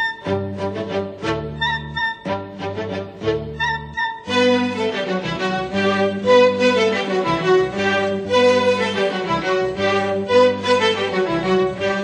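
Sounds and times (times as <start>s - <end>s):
bowed strings with violin: 0.0s - 12.0s.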